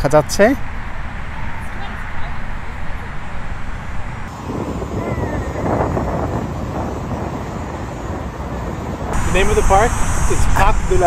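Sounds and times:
low outdoor rumble: 8.8 - 11.0.

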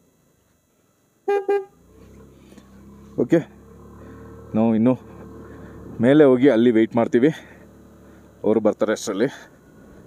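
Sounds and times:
motorcycle engine hum: 0.0 - 10.0
vehicle horn toots: 1.2 - 1.8.

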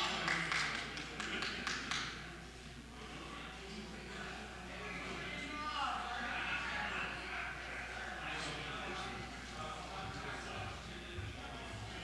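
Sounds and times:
low chatter: 0.0 - 12.0.

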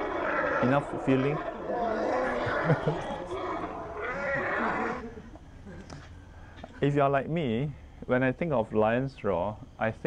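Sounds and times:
lion roaring through phone speaker: 0.0 - 5.2.

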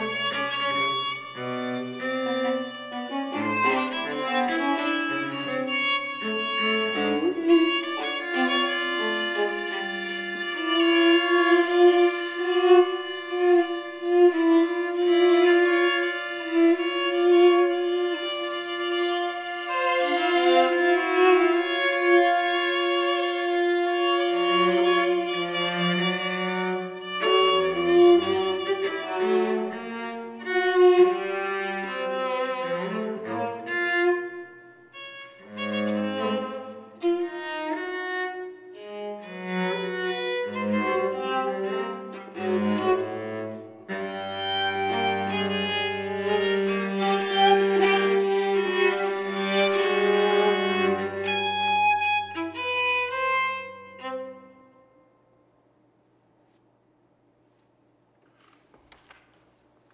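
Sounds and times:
string quartet playing: 0.0 - 54.9
cello low notes: 0.0 - 55.0.

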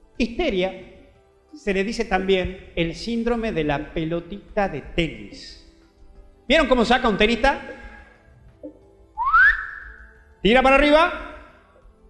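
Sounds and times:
rising whistled note: 9.2 - 10.2.

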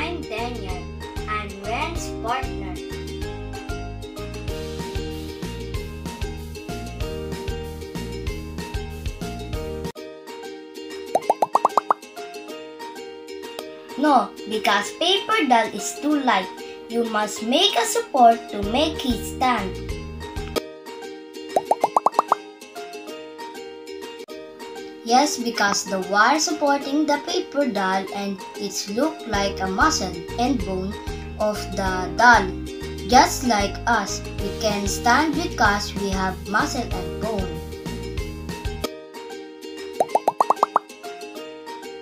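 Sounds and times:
light background music: 0.0 - 42.0
quick rising bloops: 11.2 - 12.0, 21.6 - 22.4, 40.0 - 40.8.

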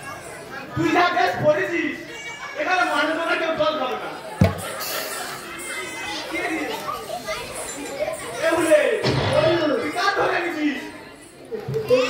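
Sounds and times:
children's voices: 0.0 - 1.0, 1.6 - 3.3, 4.0 - 12.0.

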